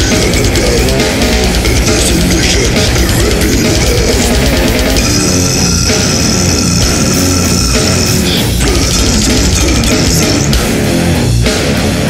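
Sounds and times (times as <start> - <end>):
death metal music: 0.0 - 12.0.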